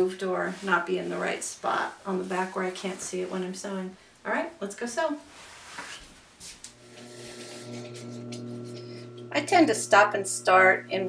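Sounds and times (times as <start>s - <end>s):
sewing machine motor humming: 6.7s - 11.0s.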